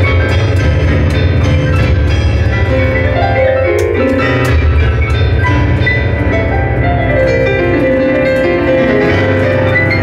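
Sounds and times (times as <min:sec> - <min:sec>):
fast electronic keyboard piano music: 0:00.0 - 0:10.0.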